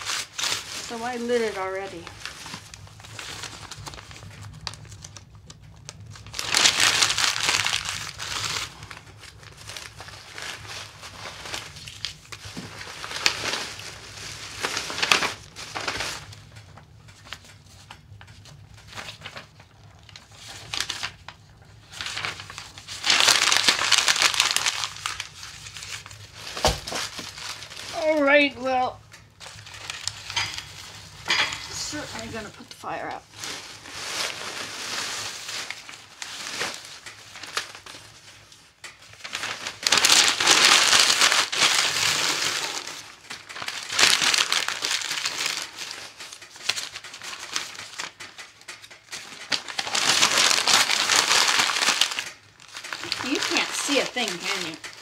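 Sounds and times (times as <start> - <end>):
paper and plastic crumpling: 0.0 - 55.0.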